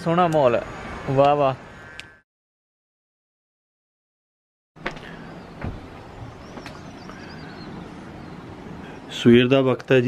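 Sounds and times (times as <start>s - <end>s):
sharp knocks: 4.8s - 6.8s.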